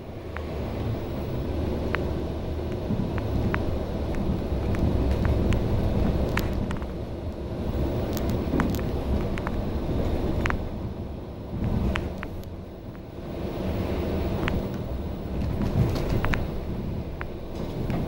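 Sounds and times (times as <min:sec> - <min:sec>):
bus engine and road rumble: 0:00.0 - 0:18.0
clicks and rattles in bus interior: 0:01.7 - 0:10.8, 0:11.5 - 0:13.1, 0:14.2 - 0:18.0.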